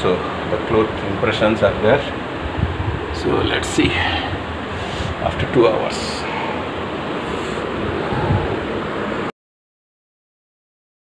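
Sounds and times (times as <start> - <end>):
steady rushing noise: 0.0 - 9.3.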